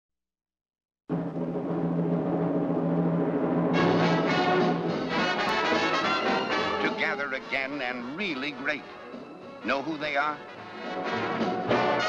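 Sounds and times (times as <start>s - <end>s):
orchestral music with brass: 1.1s - 12.0s.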